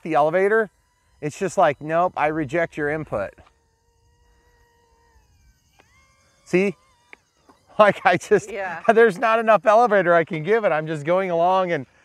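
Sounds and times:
faint electric motor whine: 0.0 - 12.0.

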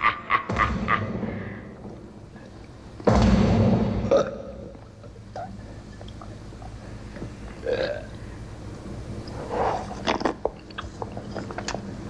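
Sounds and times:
man belching: 4.1 - 4.6, 7.6 - 8.2.

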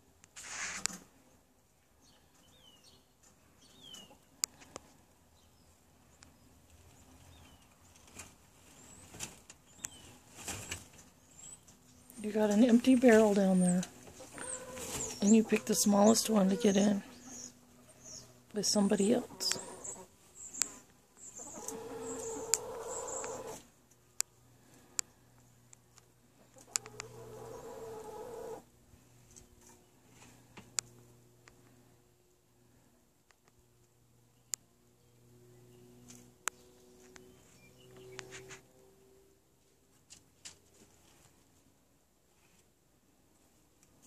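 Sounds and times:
rustling and scratching in straw: 0.4 - 1.0, 12.5 - 18.3
hen grumbling call: 21.4 - 23.6, 26.8 - 28.6.

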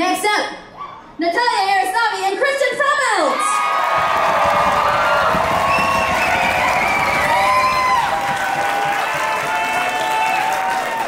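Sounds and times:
audience applauding and cheering: 3.6 - 11.0
long whoops: 3.6 - 11.0.

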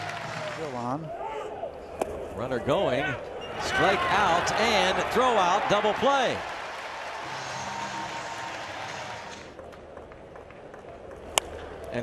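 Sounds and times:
crowd cheering and applauding: 0.0 - 0.8, 3.6 - 9.6.

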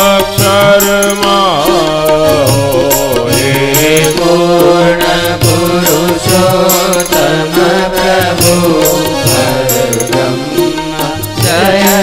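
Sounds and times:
person singing devotional song: 0.0 - 12.0
rhythmic percussion strikes: 0.0 - 12.0.

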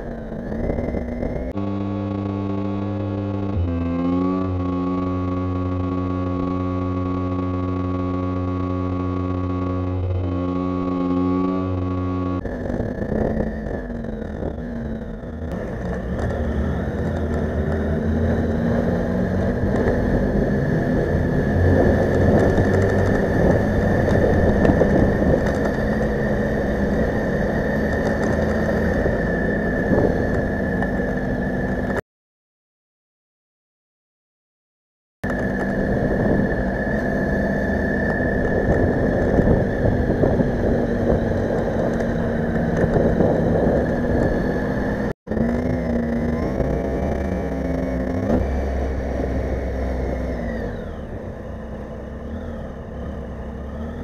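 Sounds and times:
motorcycle engine: 0.0 - 32.0, 35.2 - 54.0
road noise: 0.0 - 32.0, 35.2 - 54.0
wind noise: 12.4 - 32.0, 35.2 - 51.5.

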